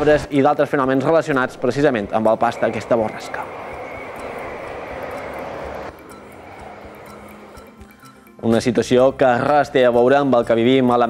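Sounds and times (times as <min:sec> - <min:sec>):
jet engines rushing: 0:01.5 - 0:08.4.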